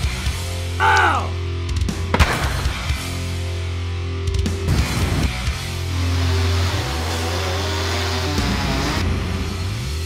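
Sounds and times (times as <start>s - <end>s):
chainsaw cutting: 5.6s - 9.0s.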